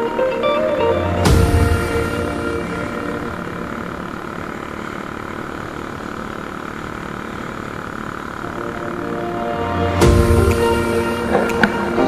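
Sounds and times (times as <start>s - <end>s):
background music: 0.0s - 4.0s, 8.4s - 12.0s
motorcycle engine drone: 0.0s - 12.0s.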